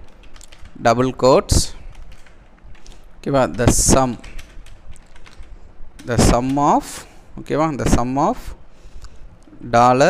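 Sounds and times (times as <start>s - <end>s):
computer keyboard typing: 0.0s - 0.9s, 1.6s - 6.9s.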